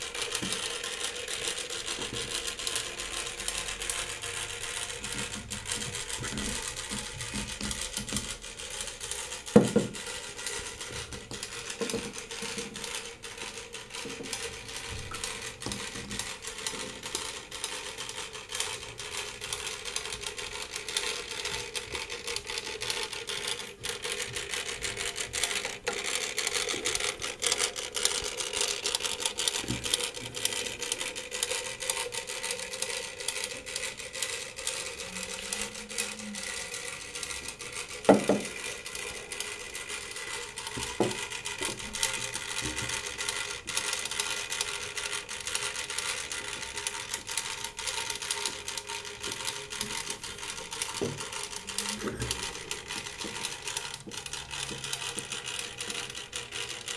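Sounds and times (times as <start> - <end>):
clockwork motor ticking and humming: 0.0 - 56.9.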